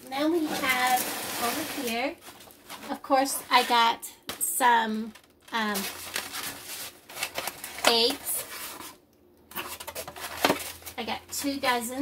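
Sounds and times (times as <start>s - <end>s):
foam egg cartons rubbing and tapping: 0.1s - 4.0s.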